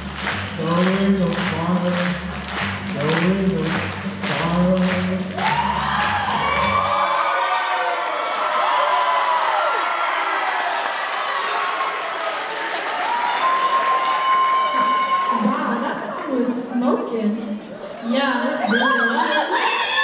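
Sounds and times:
music with steady beat: 0:00.0 - 0:06.9
applause: 0:00.0 - 0:15.6
audience cheering and whooping: 0:05.2 - 0:15.9, 0:18.6 - 0:20.0.

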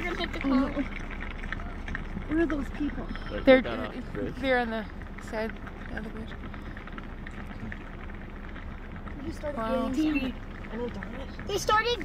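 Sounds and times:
herd rumble and patter: 0:00.0 - 0:12.0
hooves knocking on asphalt: 0:00.0 - 0:12.0.

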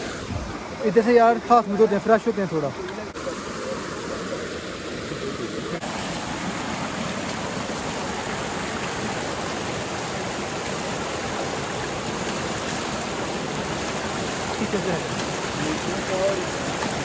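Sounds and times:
stream cascading over rocks: 0:00.0 - 0:17.0.

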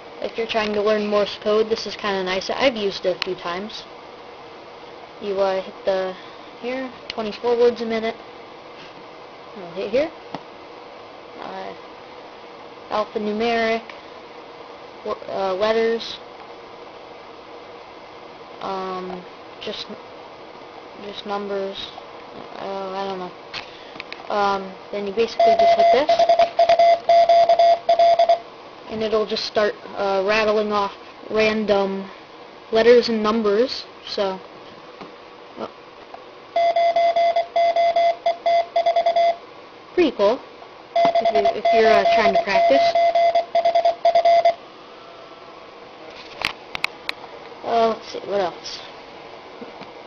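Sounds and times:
faint hum: 0:00.0 - 0:50.0
low background hiss: 0:00.0 - 0:50.0
morse code beeps: 0:25.3 - 0:28.4, 0:36.6 - 0:39.4, 0:41.0 - 0:44.6.

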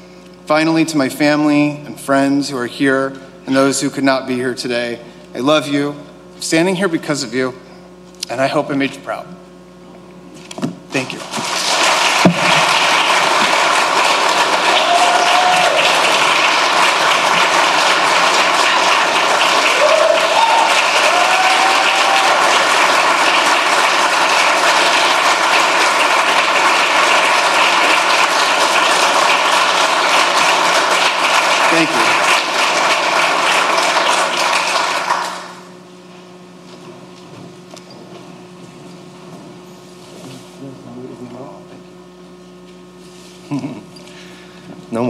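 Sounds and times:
crowd clapping: 0:11.0 - 0:35.8.

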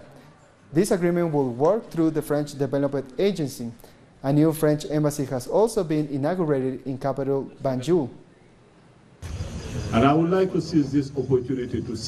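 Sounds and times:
man speaking: 0:09.9 - 0:12.0.

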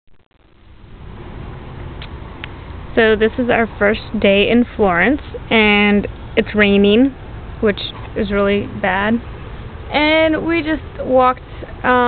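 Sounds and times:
low rumbling microphone noise: 0:00.1 - 0:12.0.

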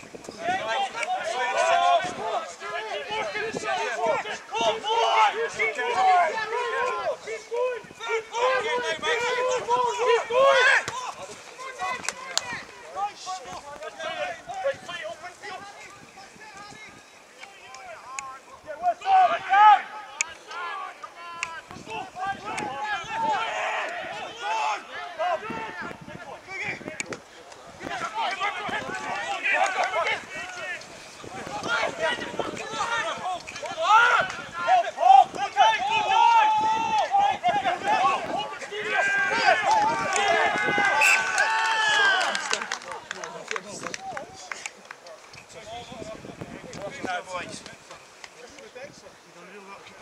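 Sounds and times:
players shouting: 0:00.3 - 0:44.7.

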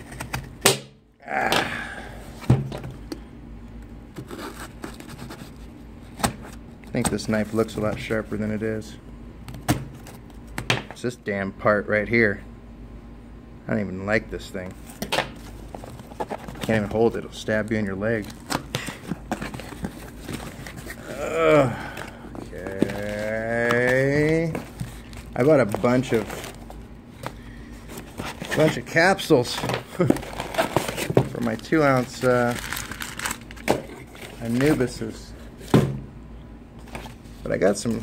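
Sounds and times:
low steady hum: 0:00.0 - 0:38.0
scraping and rustling cardboard: 0:04.2 - 0:08.3, 0:14.8 - 0:21.2, 0:21.9 - 0:35.9.

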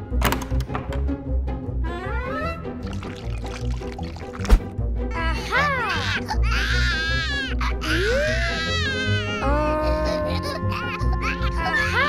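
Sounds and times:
background music: 0:00.0 - 0:12.0
baby-like wailing cries: 0:05.3 - 0:12.0.

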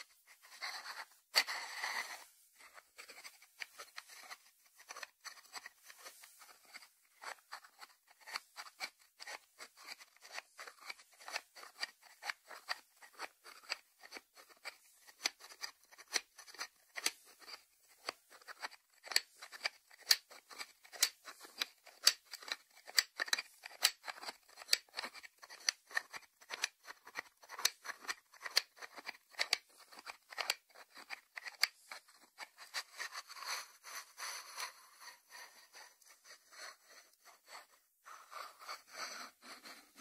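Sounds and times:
scratchy rubbing on ceramic: 0:00.0 - 0:40.0.

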